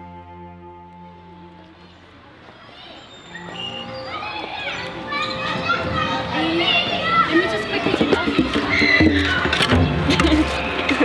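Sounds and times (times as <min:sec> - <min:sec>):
children chattering: 0:01.4 - 0:11.0.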